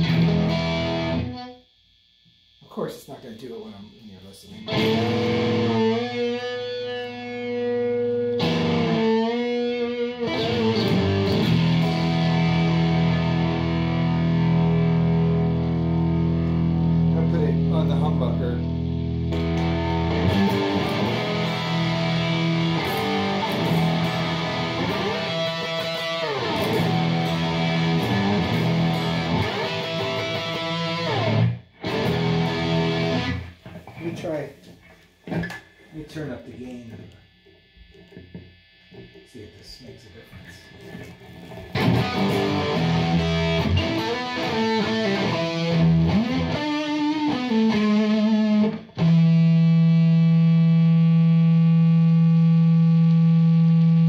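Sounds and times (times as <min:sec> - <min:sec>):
overdriven electric guitar: 0:00.0 - 0:02.3, 0:03.8 - 0:34.0, 0:40.6 - 0:54.0.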